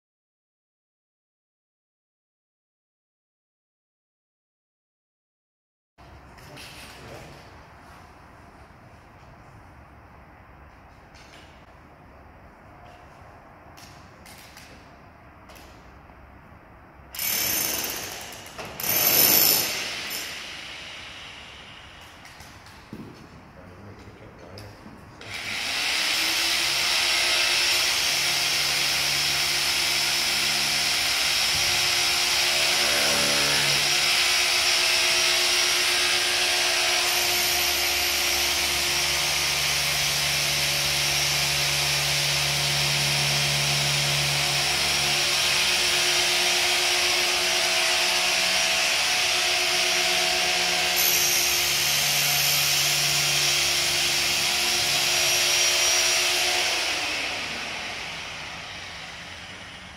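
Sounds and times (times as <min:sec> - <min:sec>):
power drill boring into pipe: 0:17.2 - 0:22.2, 0:25.2 - 0:59.7.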